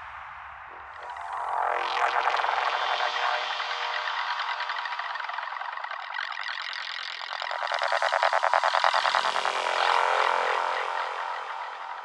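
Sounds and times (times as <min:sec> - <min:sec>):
psy trance synthesizers: 0:00.7 - 0:12.0.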